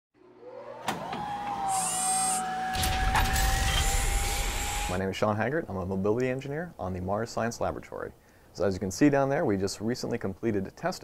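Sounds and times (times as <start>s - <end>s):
motor whine: 0.2s - 5.0s.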